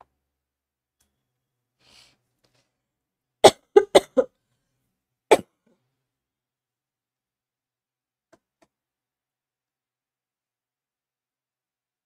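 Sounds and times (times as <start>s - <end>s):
person coughing: 3.4s - 4.3s.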